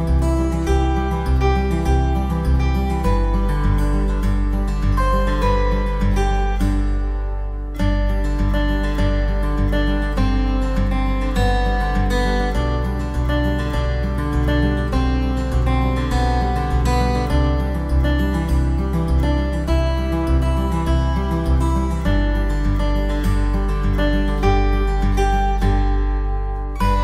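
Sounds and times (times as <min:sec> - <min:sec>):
bass line: 0:00.0 - 0:27.0
plucked acoustic guitar: 0:00.0 - 0:27.0.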